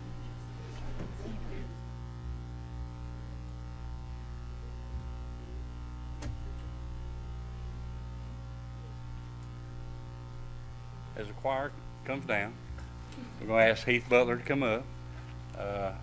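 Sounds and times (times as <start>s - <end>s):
electrical mains hum and buzz: 0.0s - 16.0s.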